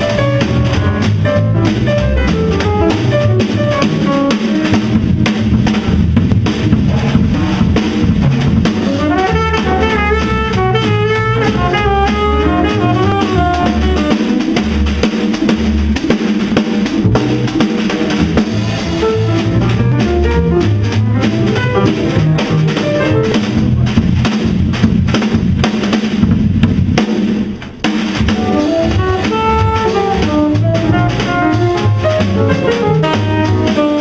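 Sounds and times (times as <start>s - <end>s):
bass drum: 0.0s - 34.0s
jazz band playing: 0.0s - 34.0s
snare and cymbals: 0.0s - 34.0s
upright bass notes: 0.0s - 34.0s.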